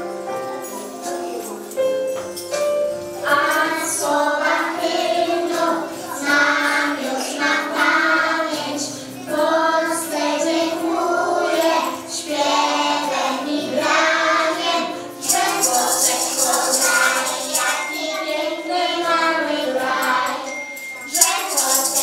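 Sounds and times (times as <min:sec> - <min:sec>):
instrumental accompaniment: 0:00.0 - 0:22.0
children singing: 0:03.2 - 0:22.0.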